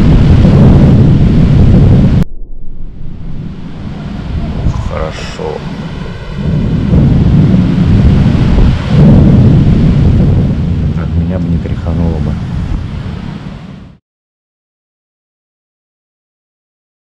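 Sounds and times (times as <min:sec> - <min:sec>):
thunder rumbling: 0:00.0 - 0:13.9.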